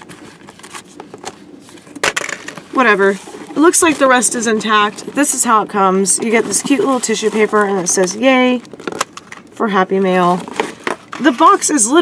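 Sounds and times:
cardboard box rustling: 0:00.0 - 0:12.0.

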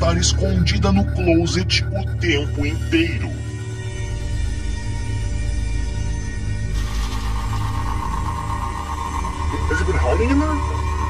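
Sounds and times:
dark background music: 0:00.0 - 0:11.0
low drone: 0:00.0 - 0:11.0
steady whine: 0:00.0 - 0:11.0
hissing electronic static: 0:06.6 - 0:11.0.

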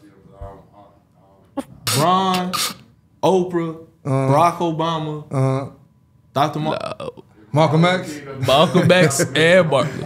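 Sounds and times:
men talking: 0:00.0 - 0:06.7, 0:07.3 - 0:10.0.

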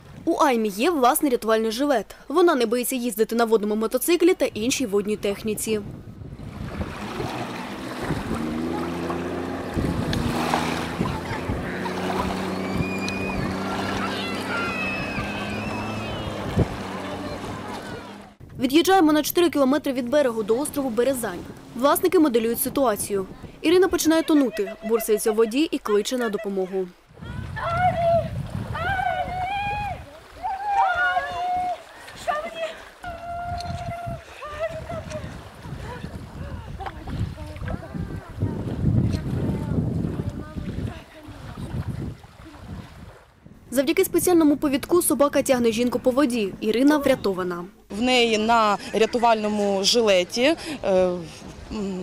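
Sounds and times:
water spray and waves: 0:03.6 - 0:52.0
gusty wind: 0:04.0 - 0:25.9, 0:26.9 - 0:52.0
jet ski engine humming: 0:06.4 - 0:18.5, 0:19.6 - 0:26.8.

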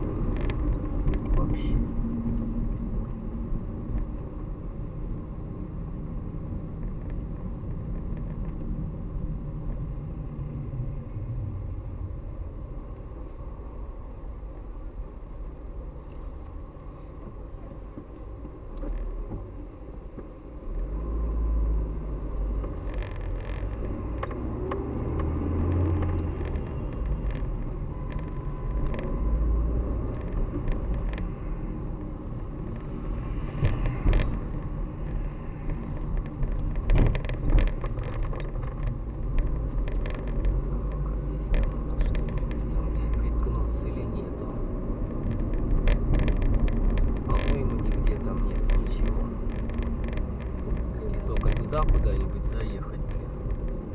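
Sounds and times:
car engine and road rumble: 0:00.0 - 0:53.9.

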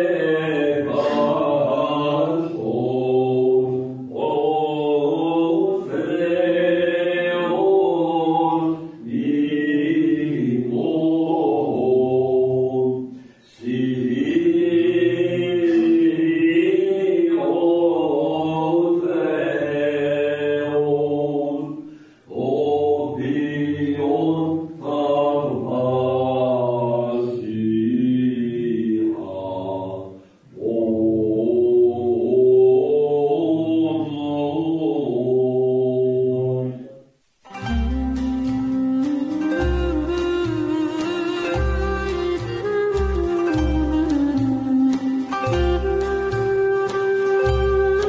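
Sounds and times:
man chanting: 0:00.0 - 0:03.5.

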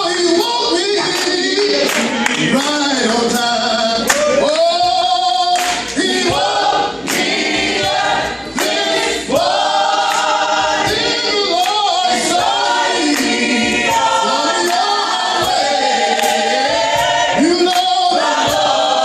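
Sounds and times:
man singing into microphone: 0:00.0 - 0:06.0
group singing gospel a cappella: 0:00.0 - 0:19.0.

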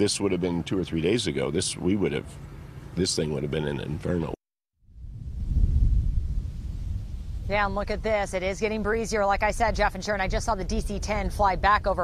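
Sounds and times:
wind buffeting microphone: 0:04.9 - 0:12.0.

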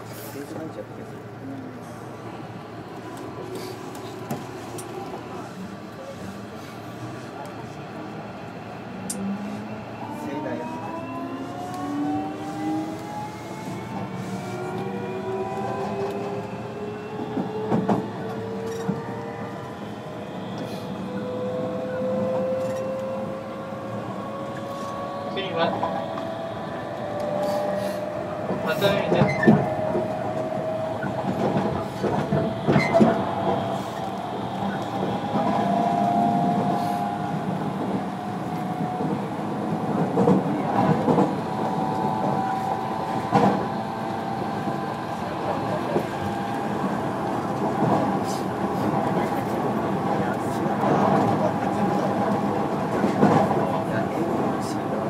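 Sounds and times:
train running rumble: 0:11.1 - 0:55.0.

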